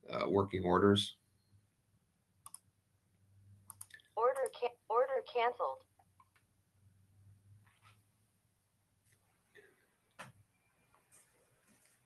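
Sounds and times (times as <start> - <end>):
computer mouse clicks: 2.4 - 2.7, 3.7 - 4.6.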